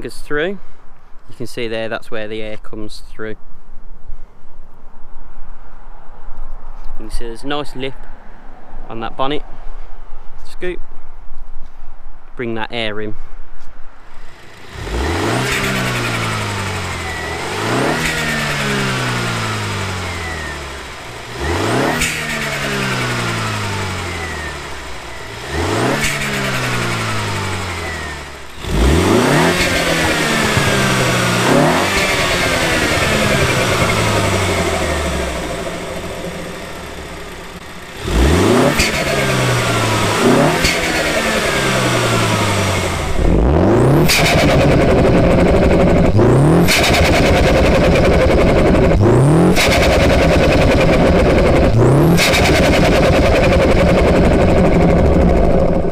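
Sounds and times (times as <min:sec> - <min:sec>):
car engine revving: 0:14.1 - 0:55.9.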